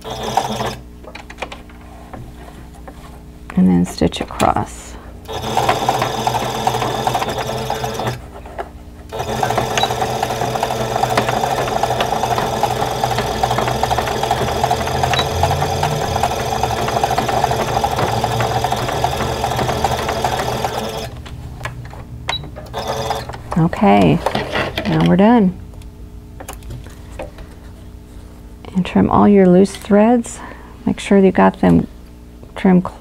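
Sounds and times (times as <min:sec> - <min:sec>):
sewing machine stitching: 0:00.0 - 0:00.8, 0:05.3 - 0:08.2, 0:09.1 - 0:21.2, 0:22.7 - 0:23.3.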